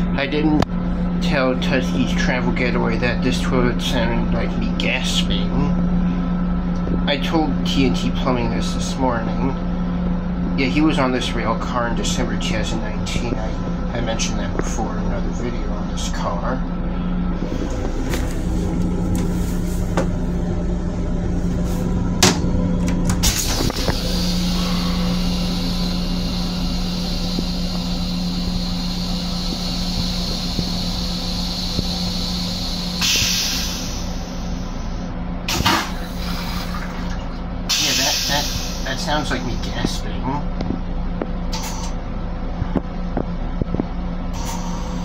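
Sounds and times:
railcar low hum: 0.0 - 45.0
train toilet flushing hiss: 23.2 - 39.9, 44.3 - 45.0.

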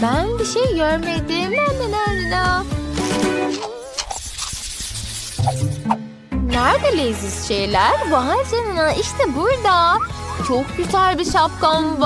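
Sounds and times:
background music: 0.0 - 3.9, 5.3 - 12.0.

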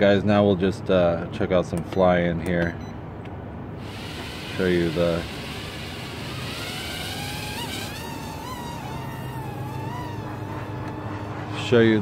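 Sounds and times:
quadcopter motors high whine: 3.8 - 12.0.

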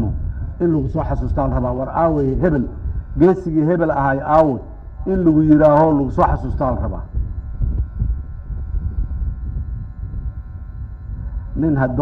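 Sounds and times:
wind buffeting a microphone: 0.0 - 12.0.

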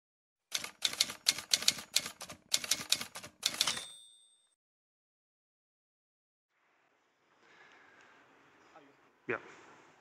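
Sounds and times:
typewriter keystrokes: 0.5 - 3.9
typewriter carriage bell: 0.5 - 4.6.

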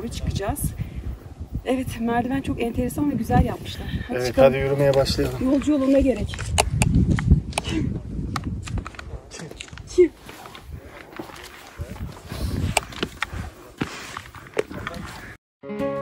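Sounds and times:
footsteps on stone steps: 8.3 - 15.4
scuffs and clicks: 8.3 - 15.4
guitar music: 15.6 - 16.0.

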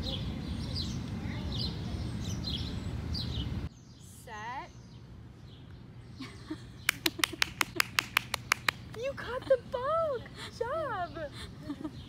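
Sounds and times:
toddler clapping hands: 6.9 - 9.0.

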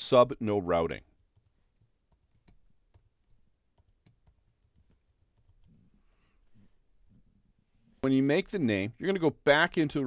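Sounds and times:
keystrokes on computer keyboard: 1.2 - 5.8.

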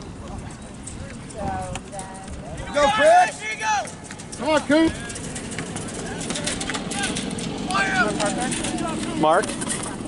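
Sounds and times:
voices calling out: 0.0 - 10.0
steady low rumble: 4.0 - 10.0.

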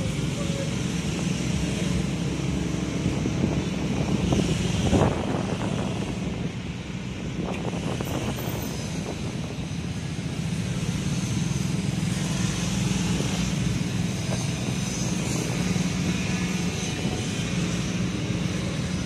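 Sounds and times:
surrounding car traffic: 0.0 - 19.0.

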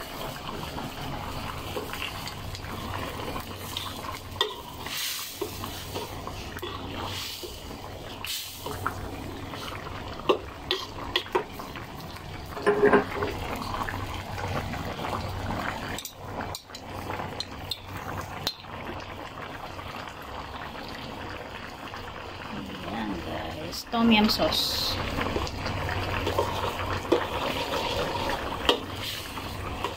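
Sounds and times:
broth bubbling in wok: 0.0 - 29.9.

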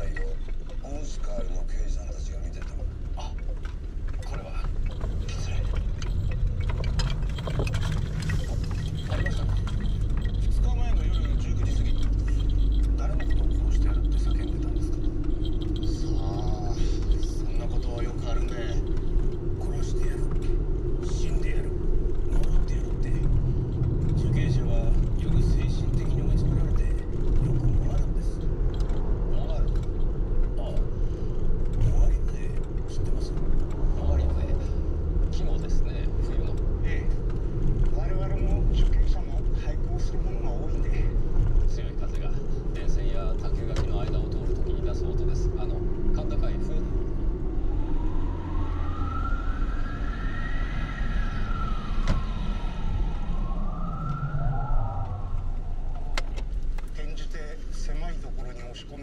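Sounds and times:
road and engine rumble: 0.0 - 59.0
siren wailing: 44.6 - 56.6.

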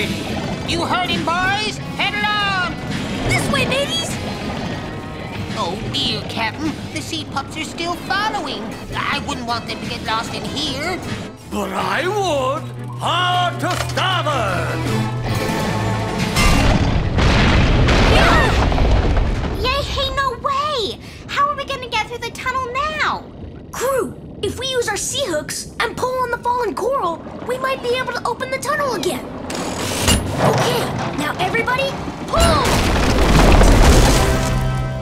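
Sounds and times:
music: 0.0 - 18.5, 33.6 - 35.0
deep rumbling crash: 15.9 - 35.0
cartoon rumbling crash: 16.3 - 20.3, 32.2 - 35.0.

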